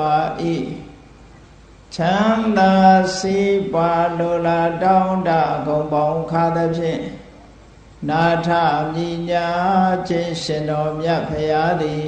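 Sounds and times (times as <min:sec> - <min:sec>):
man chanting: 0:00.0 - 0:01.0, 0:01.9 - 0:07.4, 0:08.0 - 0:12.0.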